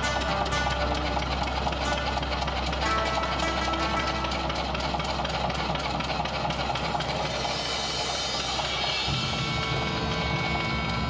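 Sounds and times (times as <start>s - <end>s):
low drone: 0.0s - 11.0s.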